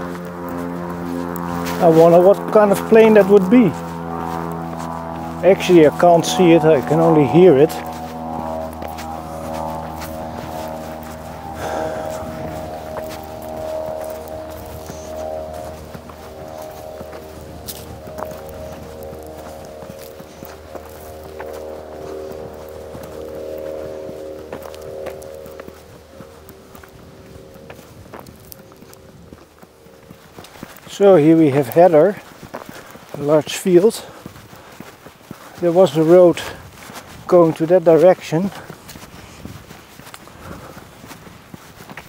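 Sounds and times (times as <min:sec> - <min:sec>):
aircraft engine drone: 0:00.0 - 0:42.0
footsteps on sand: 0:00.0 - 0:42.0
person speaking: 0:01.7 - 0:03.8, 0:05.2 - 0:08.0.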